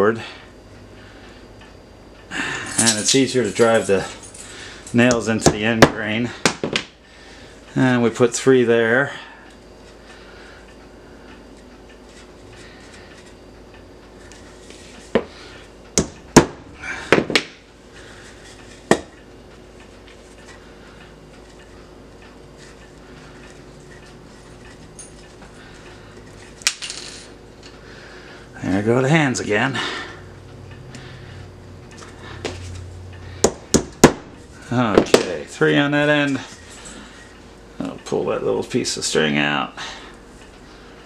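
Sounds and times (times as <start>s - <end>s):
steady low hum: 0.0s - 41.0s
tacks hammered into wood: 33.4s - 34.3s.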